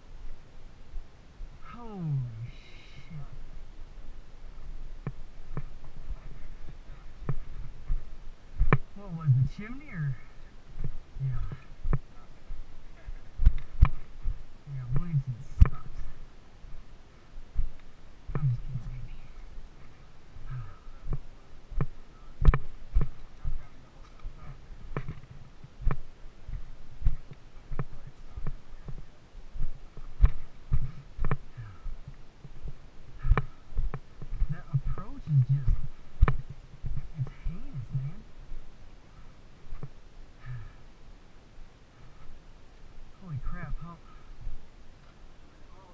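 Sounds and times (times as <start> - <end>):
low voice sounds: 1.6 - 3.4, 11.2 - 13.4, 20.5 - 21.0, 31.6 - 31.9, 40.4 - 40.8
footsteps on rocks: 4.6 - 9.0, 10.7 - 16.8, 17.5 - 18.5, 19.8 - 37.1.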